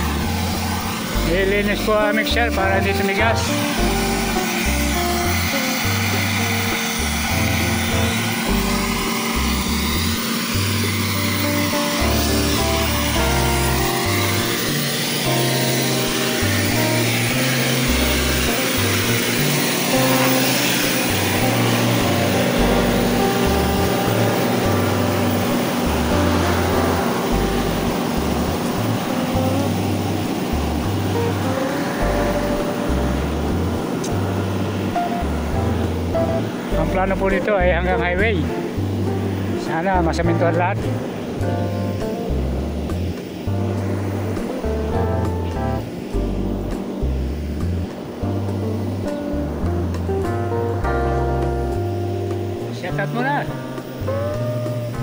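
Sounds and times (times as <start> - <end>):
background music with bass line: 0.0 - 55.0
mixer truck engine running: 0.0 - 55.0.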